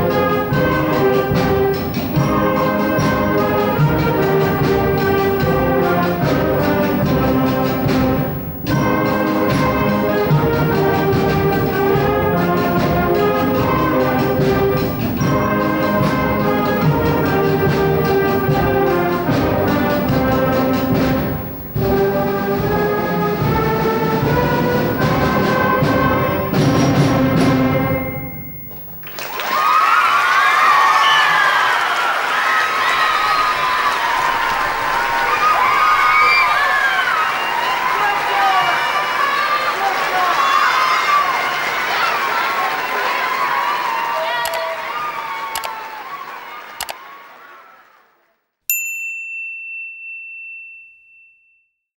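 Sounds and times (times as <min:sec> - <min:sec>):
bright chime ding: 0:27.9 - 0:29.0, 0:48.7 - 0:51.7
audience applause: 0:28.8 - 0:48.4
cheering and whoops: 0:29.1 - 0:48.1.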